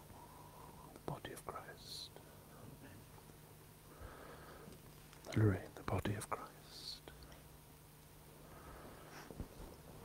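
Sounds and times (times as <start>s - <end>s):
soft hiss: 0.0s - 10.0s
man murmuring quietly: 0.6s - 3.1s, 5.2s - 7.3s.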